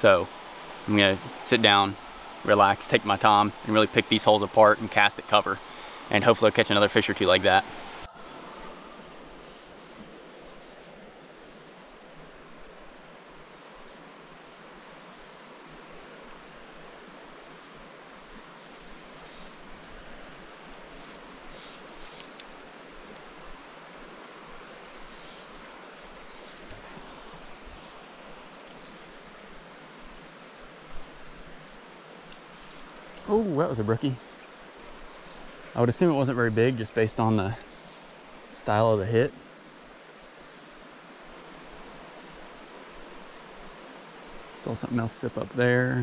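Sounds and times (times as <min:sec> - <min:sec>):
creek water running: 0:00.0 - 0:46.0.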